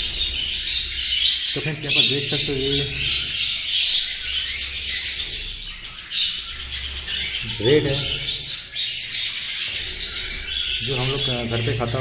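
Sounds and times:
budgerigars chattering and chirping: 0.0s - 12.0s.

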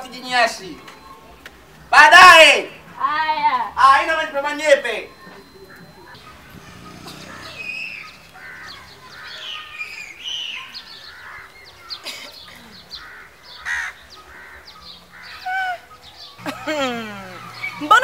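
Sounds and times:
birds chirping and calling: 0.0s - 18.0s.

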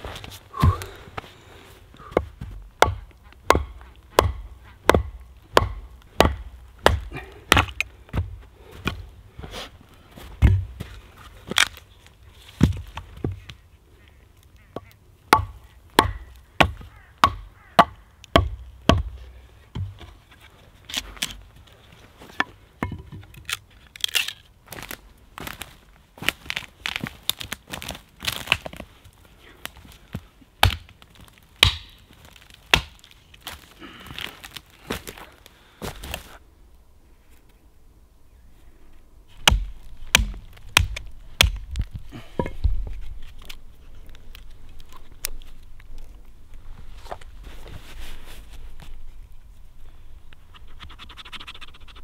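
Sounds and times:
axe chopping wood: 2.1s - 9.0s, 10.4s - 10.8s, 15.3s - 19.2s, 30.6s - 30.9s, 31.6s - 32.0s, 32.7s - 33.0s, 39.4s - 41.8s.

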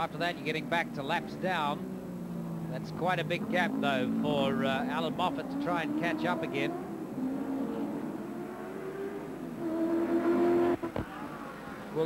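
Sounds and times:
racing car engine: 0.1s - 12.0s.

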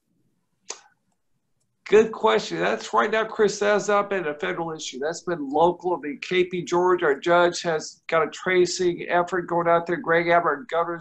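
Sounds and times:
man speaking: 1.9s - 11.0s.

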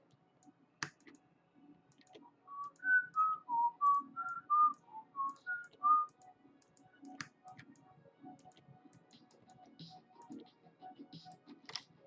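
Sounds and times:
computer mouse clicks: 0.1s - 1.2s, 1.9s - 3.3s, 3.9s - 10.5s, 11.2s - 11.9s
keyboard clicks: 0.1s - 1.2s, 1.9s - 10.5s, 11.1s - 12.0s
person whistling a tune: 2.5s - 6.1s.

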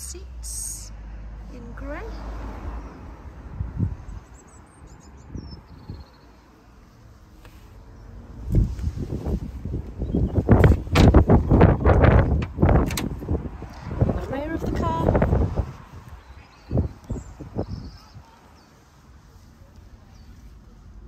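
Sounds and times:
wind buffeting microphone: 2.8s - 4.4s, 5.1s - 6.2s, 8.4s - 18.3s
microphone handling knocks: 10.5s - 13.2s.

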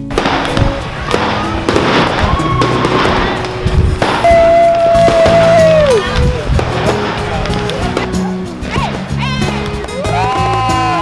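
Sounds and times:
fireworks cracks and bangs: 0.0s - 11.0s
whistle-like tone: 4.2s - 6.0s.

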